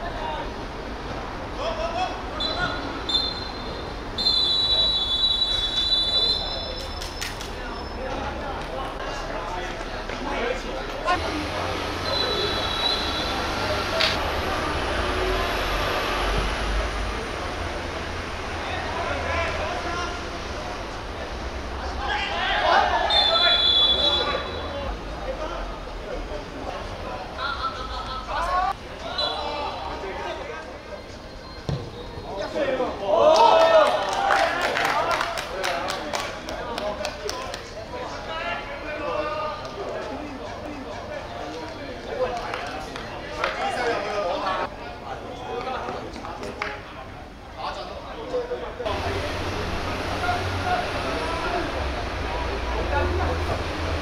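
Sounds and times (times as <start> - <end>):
referee's whistle blasts: 2.4 - 7.0, 12.0 - 13.4, 23.1 - 24.8
players shouting: 21.8 - 24.9
football kicked with dull thump: 31.7 - 32.0.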